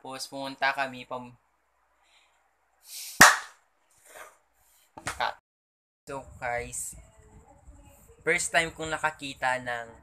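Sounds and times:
sharp hand clap: 3.2 - 3.6.

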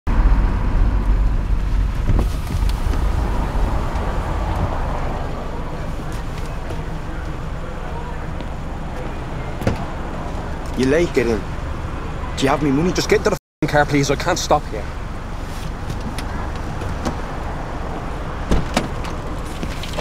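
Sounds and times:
traffic rumble inside car: 0.1 - 20.0.

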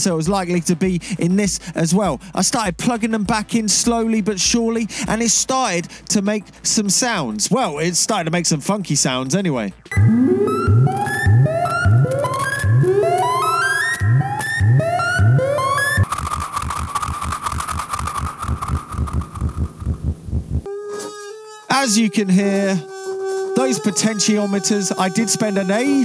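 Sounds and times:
fast rhythmic pulsing noise: 9.8 - 20.7
synthesizer upward swooping notes: 9.9 - 20.4
steady synthesizer tone with crackles: 9.9 - 20.7.

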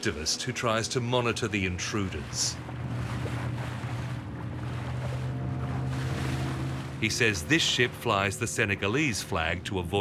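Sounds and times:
boat motor droning: 0.0 - 10.0
water splashing around hull: 0.0 - 10.0.

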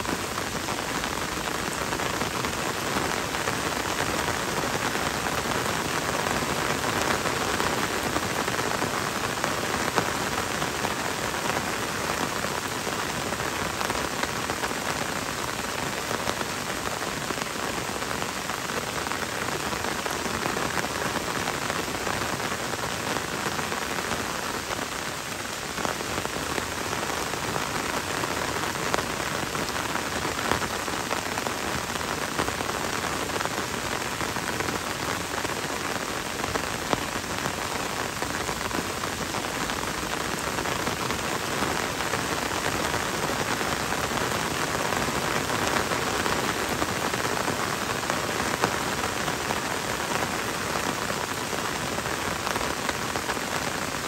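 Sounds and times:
gentle rain hiss: 0.0 - 54.0.

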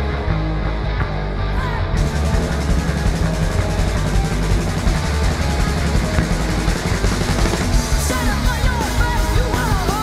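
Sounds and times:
punk rock band playing: 0.0 - 10.0.

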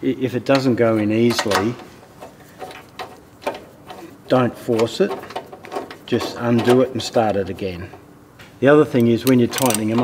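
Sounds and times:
metallic socket wrench clicks: 9.0 - 10.0.

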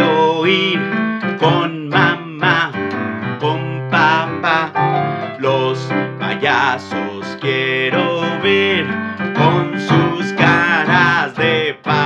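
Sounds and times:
keyboard accompaniment: 0.0 - 12.0
man singing: 0.0 - 12.0.

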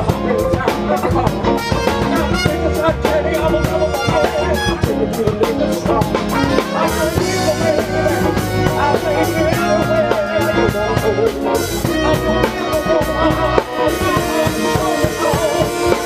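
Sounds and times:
live band with horn section: 0.0 - 16.0
trumpets: 1.4 - 16.0.

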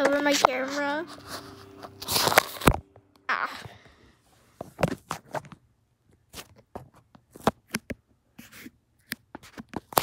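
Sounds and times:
phone handling rustling: 1.7 - 3.0.

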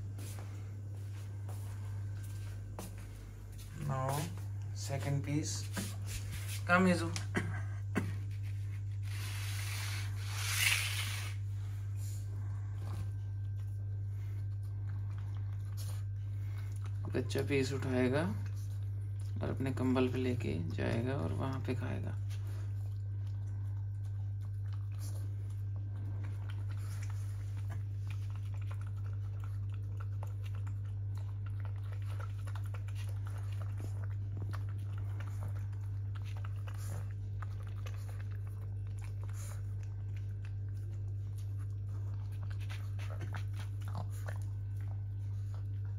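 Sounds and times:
steady low hum: 0.0 - 45.9
dog chewing: 8.0 - 45.9.

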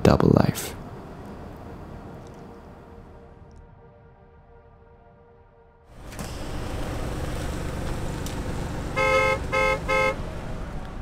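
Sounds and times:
steady low rumble: 0.0 - 11.0
car horn honking: 8.8 - 10.4.

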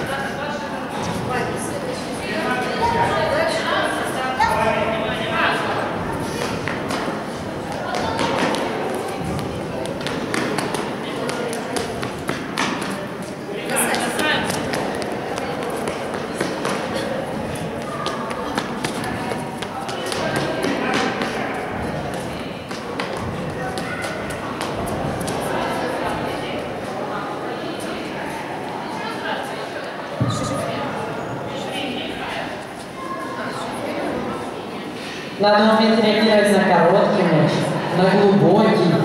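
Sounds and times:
indistinct chatter: 0.0 - 39.0.

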